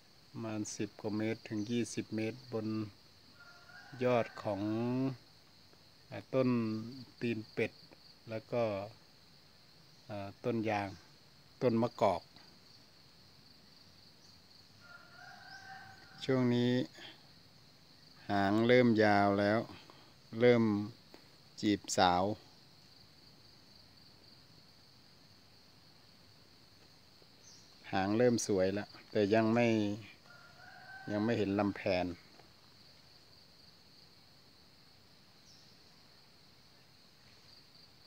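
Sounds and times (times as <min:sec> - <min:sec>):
insects chirring: 0:00.0 - 0:38.0
man speaking: 0:00.4 - 0:02.9, 0:04.0 - 0:05.2, 0:06.1 - 0:07.7, 0:08.3 - 0:09.0, 0:10.1 - 0:11.0, 0:11.6 - 0:12.4, 0:16.2 - 0:17.2, 0:18.2 - 0:21.0, 0:21.6 - 0:22.4, 0:27.8 - 0:30.2, 0:31.1 - 0:32.2
faint drawn-out bird call: 0:02.6 - 0:04.8, 0:14.2 - 0:17.3, 0:28.8 - 0:32.3
distant bird call: 0:03.3 - 0:04.1, 0:14.2 - 0:16.3.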